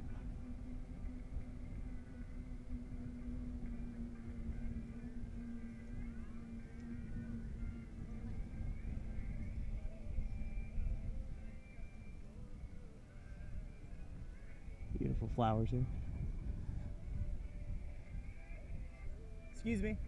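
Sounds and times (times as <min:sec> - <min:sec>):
faint music: 0:00.0 - 0:20.0
steady low hum: 0:00.0 - 0:20.0
wind rumbling on microphone: 0:00.0 - 0:20.0.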